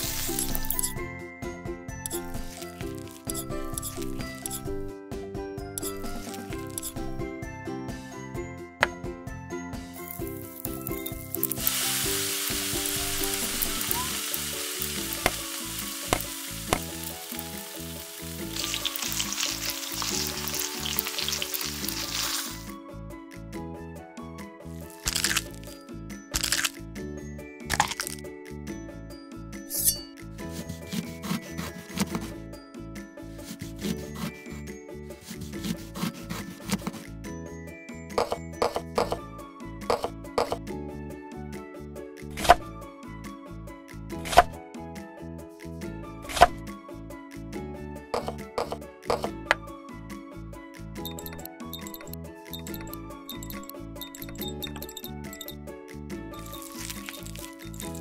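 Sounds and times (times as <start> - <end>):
food sizzling in hot oil: 0.0 - 0.9, 10.0 - 22.7, 56.4 - 58.0
background music: 0.0 - 58.0
clicks and scrapes on glass bowl: 5.8 - 7.0, 51.0 - 55.6.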